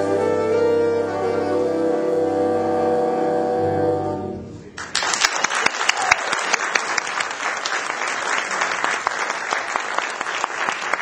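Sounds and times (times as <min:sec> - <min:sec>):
jazz band holding a chord: 0:00.0 - 0:04.8.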